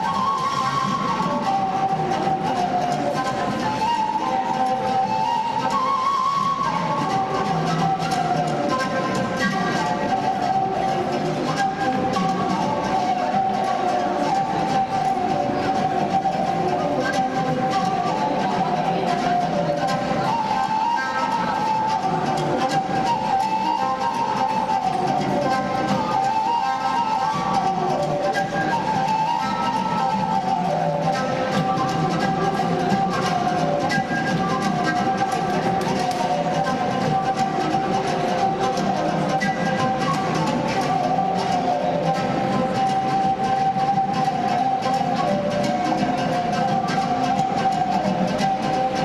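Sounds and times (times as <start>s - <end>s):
plucked lute: 0.0s - 49.0s
wooden flute high note: 0.0s - 49.0s.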